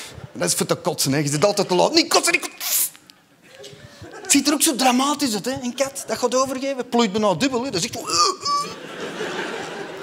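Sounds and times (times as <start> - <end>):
audience laughing: 8.5 - 10.0.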